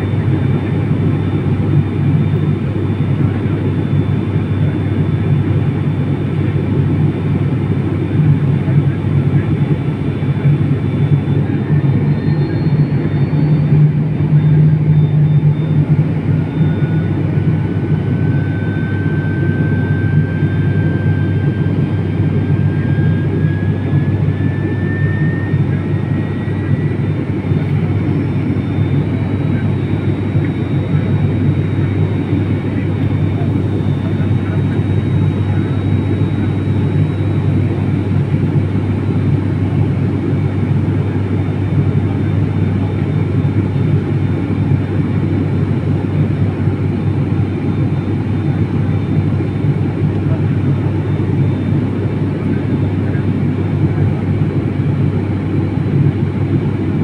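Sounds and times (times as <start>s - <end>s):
faint high whine: 0.0s - 57.0s
propeller plane engines droning: 0.0s - 57.0s.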